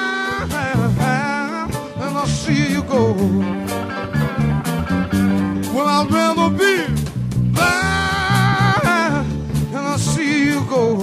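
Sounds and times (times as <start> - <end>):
person singing: 0.0 - 3.9, 7.6 - 11.0
bass line: 0.0 - 11.0
electric guitar: 0.0 - 11.0.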